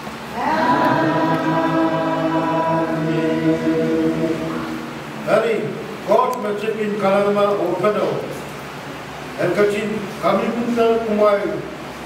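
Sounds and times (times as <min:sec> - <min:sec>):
hymn singing in held notes: 0:00.3 - 0:06.1.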